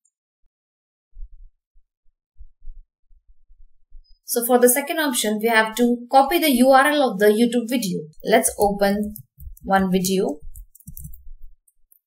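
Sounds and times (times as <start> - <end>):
dull low thumps: 1.2 - 4.3, 8.8 - 11.6.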